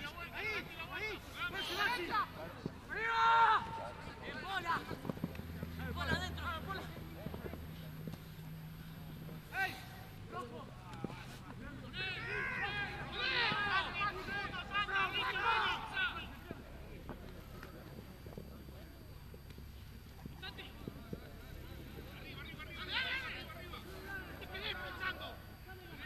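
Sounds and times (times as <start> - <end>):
people shouting calls: 0.0 - 5.0, 9.4 - 11.0, 11.8 - 16.6
low steady hum: 0.0 - 26.0.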